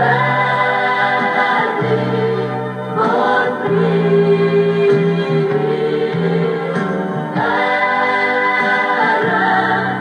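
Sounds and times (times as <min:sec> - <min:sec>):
mixed vocal group singing: 0:00.0 - 0:10.0.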